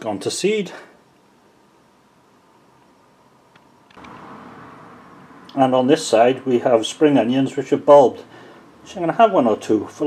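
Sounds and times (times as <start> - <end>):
faint clicks: 3.5 - 4.2.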